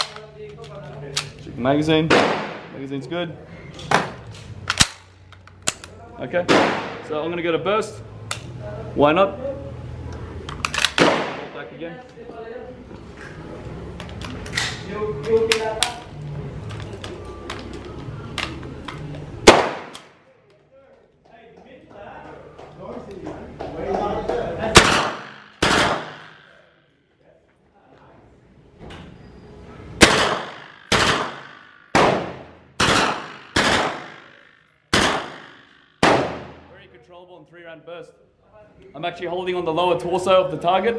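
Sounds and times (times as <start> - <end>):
gun handling clicks: 0.0 - 1.4, 3.8 - 6.0, 8.2 - 8.6, 10.1 - 11.1, 13.9 - 20.6.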